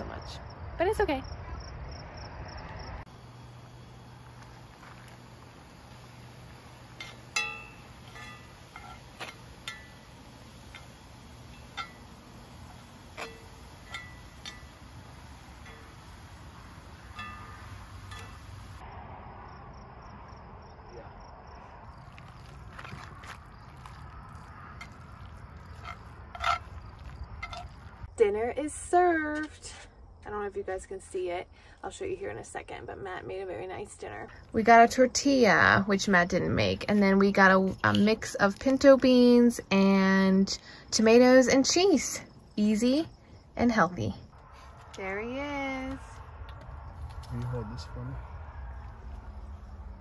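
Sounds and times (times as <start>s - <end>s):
low hum: 3.1s - 18.9s
utensil scraping a skillet: 5.9s - 18.8s, 24.3s - 28.0s.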